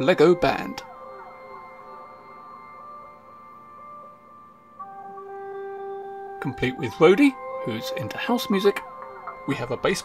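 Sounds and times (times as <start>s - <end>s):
electronic synth music loop: 0.0s - 10.0s.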